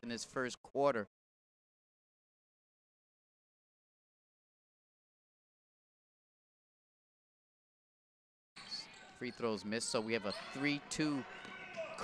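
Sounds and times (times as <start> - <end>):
commentator speaking: 9.2 - 12.0.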